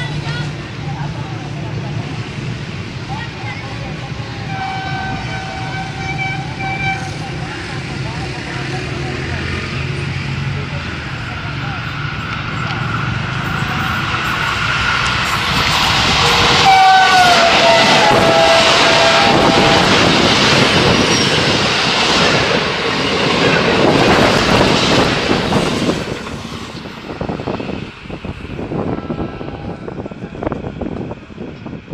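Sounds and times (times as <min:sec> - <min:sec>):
locomotive passing at speed: 0:00.0 - 0:31.9
train horn: 0:04.4 - 0:07.4, 0:16.2 - 0:20.2
wind gusts on microphone: 0:12.0 - 0:31.9.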